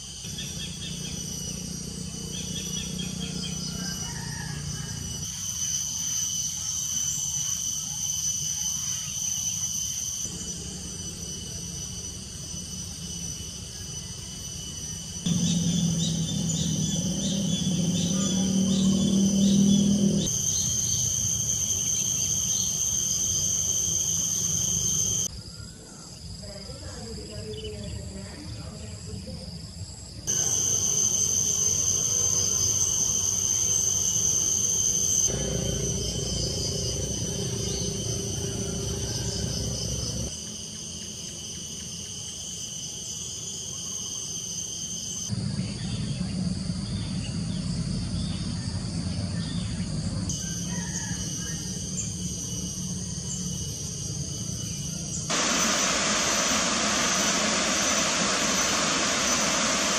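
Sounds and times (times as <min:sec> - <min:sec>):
insects chirring: 0:00.0 - 0:59.9
low hum: 0:15.2 - 0:25.3, 0:30.3 - 0:40.3, 0:51.9 - 0:59.9.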